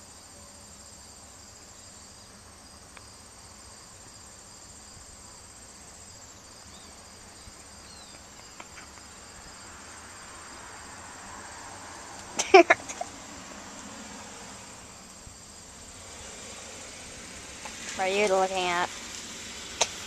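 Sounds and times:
crickets chirping: 0.0s - 20.0s.

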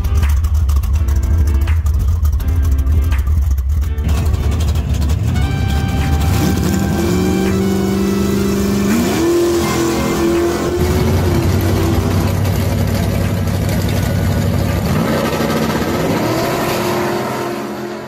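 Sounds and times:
drag racing car engines accelerating: 0.0s - 18.0s.

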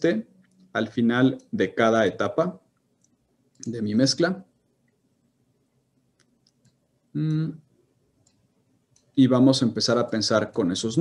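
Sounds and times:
computer mouse clicks: 2.7s - 3.8s, 6.2s - 7.4s, 8.2s - 9.2s.

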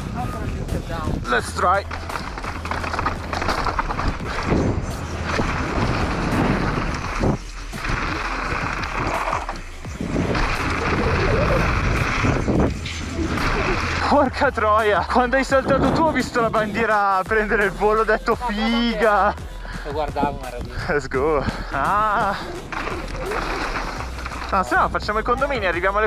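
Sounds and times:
wind buffeting microphone: 0.0s - 17.3s
bike rattle: 0.0s - 18.0s, 19.9s - 26.0s
tyres on gravel and stones: 0.0s - 26.0s.

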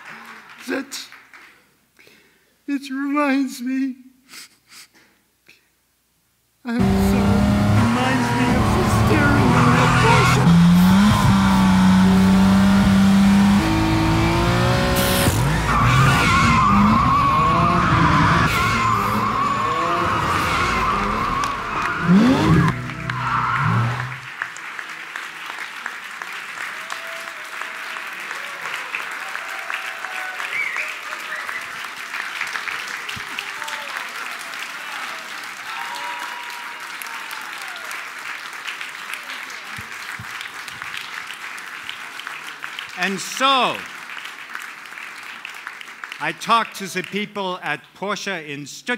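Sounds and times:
audience applause: 0.0s - 1.7s, 6.8s - 47.3s
car engine revving: 6.8s - 24.3s
scattered cheering: 6.8s - 41.2s
tyre squeal: 15.0s - 24.3s.

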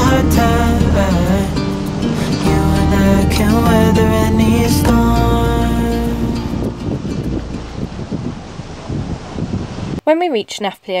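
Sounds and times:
song closing chord: 0.0s - 8.3s
waves washing past sailboat: 0.0s - 10.0s
wind buffeting microphone: 0.0s - 10.0s.

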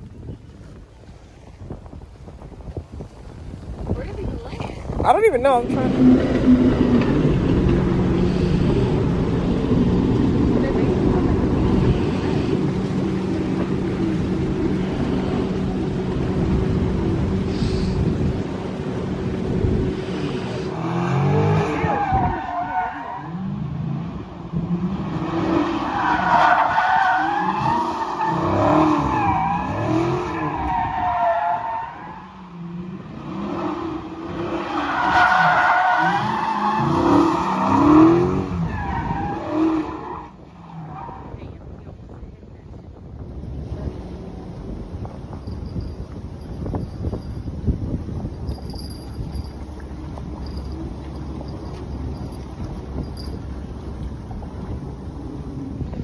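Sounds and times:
wind noise: 0.0s - 22.8s, 33.2s - 56.0s
engines revving: 4.9s - 41.5s
steady engine drone: 5.6s - 21.8s.

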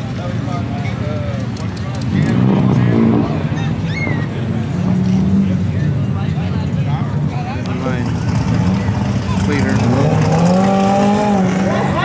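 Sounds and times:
engine running at low revs: 0.0s - 12.0s
people talking: 0.0s - 12.0s.

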